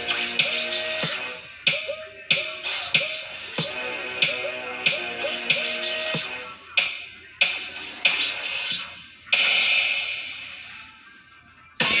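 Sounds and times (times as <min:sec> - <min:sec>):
hip-hop track from a tv: 0:00.0 - 0:12.0
loud tv sound: 0:00.0 - 0:12.0.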